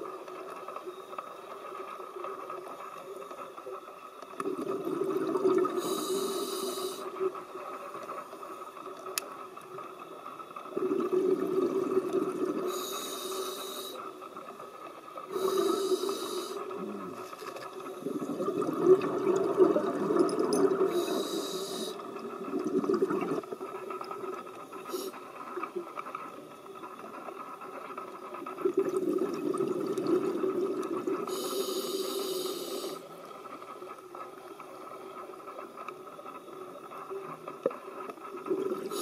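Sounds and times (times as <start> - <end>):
exhaust bubbling underwater: 4.4 - 5.9, 10.8 - 12.8, 18.0 - 21.2, 21.8 - 23.6, 28.5 - 31.2
regulator inhale hiss: 5.6 - 7.3, 12.4 - 14.2, 15.3 - 17.1, 20.8 - 22.2, 24.8 - 25.3, 31.1 - 33.3.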